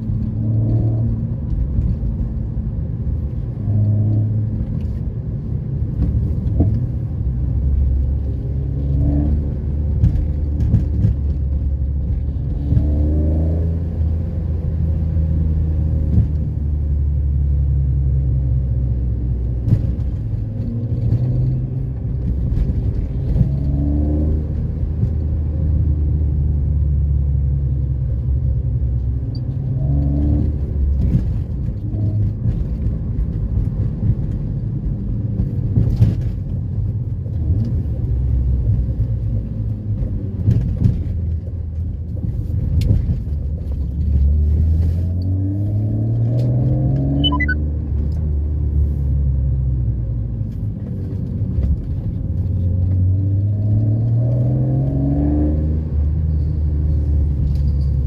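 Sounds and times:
car engine accelerating from inside: 0.0 - 58.0.

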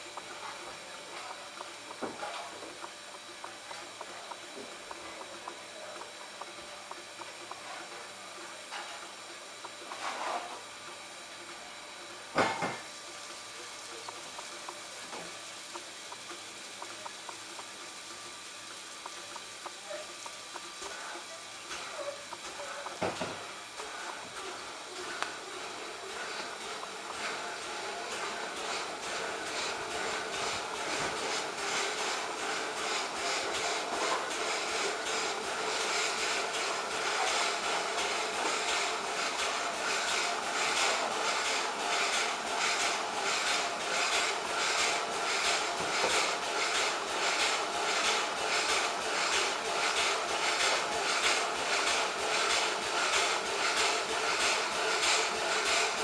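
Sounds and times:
steam hissing: 0.0 - 56.0.

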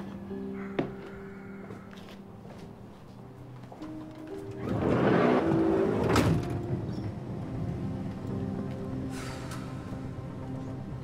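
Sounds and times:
background music: 0.0 - 11.0
sliding van door slamming shut: 4.7 - 6.9.

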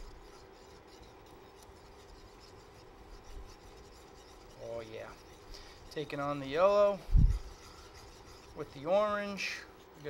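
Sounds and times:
whisk scraping a pan: 0.0 - 10.0.

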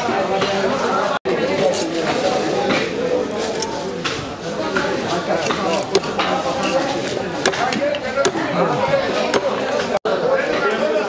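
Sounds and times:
chatter of voices: 0.0 - 11.0
blade chopping fish: 4.0 - 8.4.

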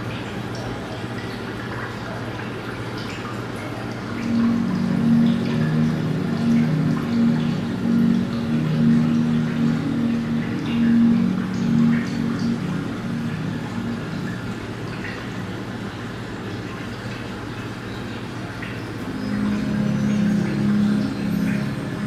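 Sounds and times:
water trickling into aquarium: 0.0 - 22.0
slow background music: 0.1 - 22.0
steady low hum: 3.6 - 22.0.

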